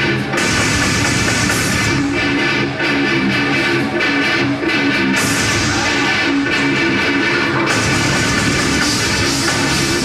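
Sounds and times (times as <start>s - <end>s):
distorted electric guitar: 0.0s - 10.0s
drums: 0.0s - 10.0s
heavy metal band playing live: 0.0s - 10.0s.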